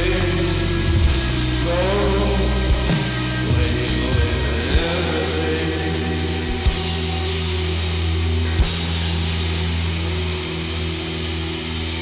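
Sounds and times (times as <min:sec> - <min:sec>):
synth rock band sustained chord: 0:00.0 - 0:12.0.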